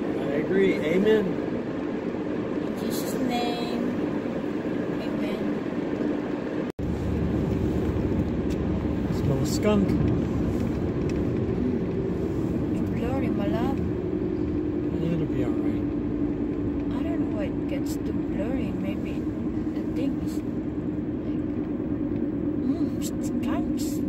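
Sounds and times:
car road and engine noise: 0.0s - 24.0s.

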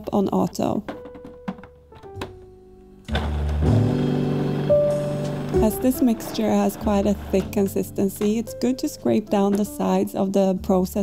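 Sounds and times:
background music: 0.0s - 11.0s
food processor blending: 3.1s - 7.8s.

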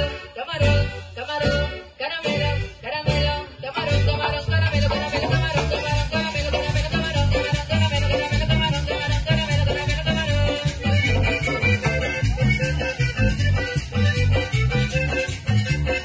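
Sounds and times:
accordion: 0.0s - 16.0s
electric bass: 0.0s - 16.0s
drum kit dance beat: 3.1s - 16.0s.

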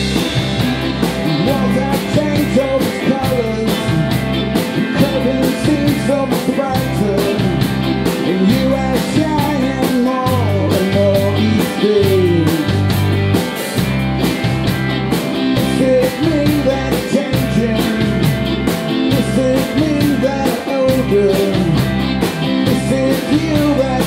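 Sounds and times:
drum kit beat: 0.0s - 24.0s
electric guitars: 0.0s - 24.0s
man singing: 1.3s - 12.9s, 15.6s - 22.0s, 22.6s - 24.0s.

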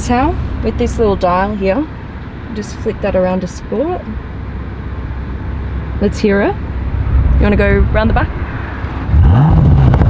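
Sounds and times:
car engine idling from inside: 0.0s - 8.3s.

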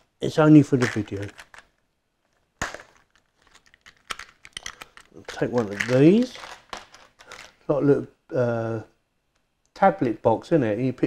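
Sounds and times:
small plastic parts clicking: 0.8s - 7.6s.

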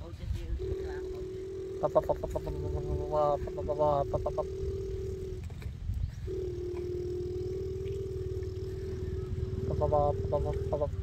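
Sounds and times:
low rumble: 0.3s - 11.0s
child imitating truck engine: 0.6s - 5.6s, 6.3s - 11.0s.

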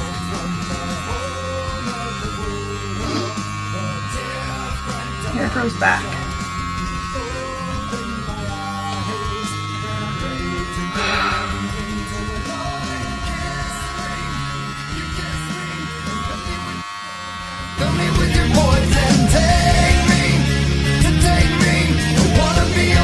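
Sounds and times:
heavy rock music: 0.0s - 16.8s, 17.4s - 23.0s
electric hair clippers buzzing: 0.0s - 23.0s.

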